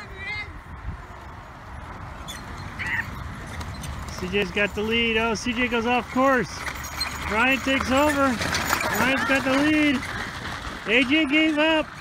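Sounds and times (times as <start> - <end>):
wheels rolling over gravel: 2.2 - 12.0.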